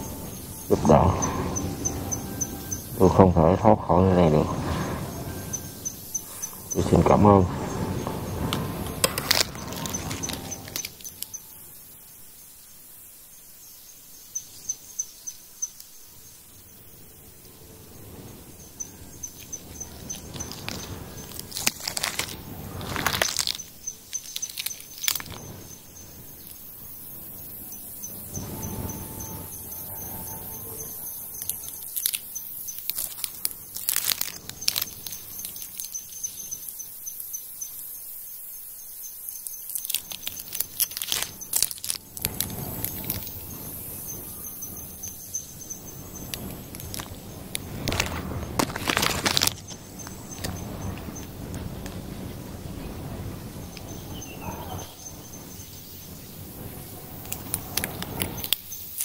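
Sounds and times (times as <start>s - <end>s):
bursts of noise: 0.0s - 11.8s
insect trilling: 0.0s - 59.0s.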